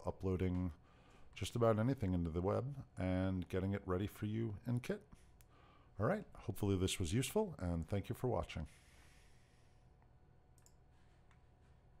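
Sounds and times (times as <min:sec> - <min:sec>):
room hum: 0:00.0 - 0:12.0
computer mouse clicks: 0:10.5 - 0:11.4.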